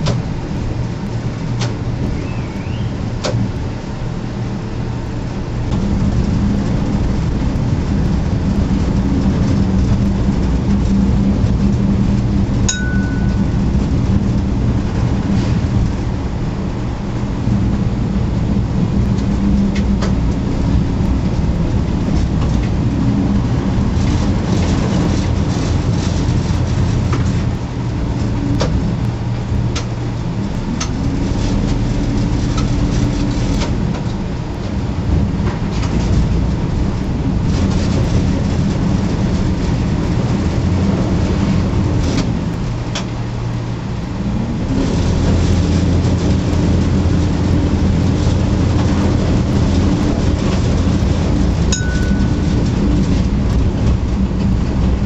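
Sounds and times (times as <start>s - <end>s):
machinery clicks and clanks: 0.0s - 2.2s, 17.5s - 55.0s
heavy machinery humming: 0.0s - 55.0s.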